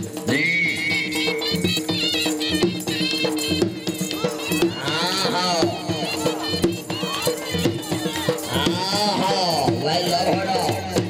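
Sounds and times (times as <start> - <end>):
dhol drumming: 0.0 - 11.0.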